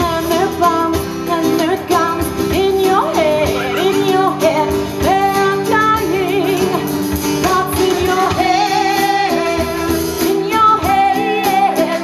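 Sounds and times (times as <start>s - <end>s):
drum kit: 0.0s - 12.0s
strummed acoustic guitar: 0.0s - 12.0s
woman singing: 0.0s - 12.0s.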